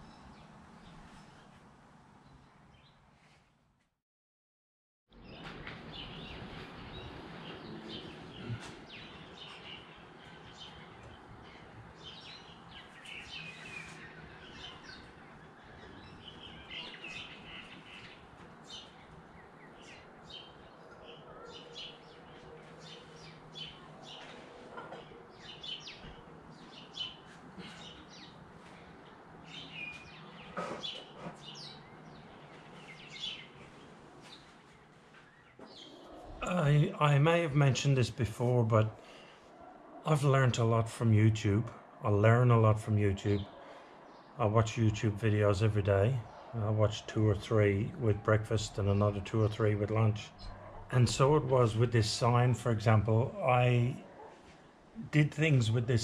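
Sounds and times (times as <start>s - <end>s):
birds chirping: 5.1s - 56.0s.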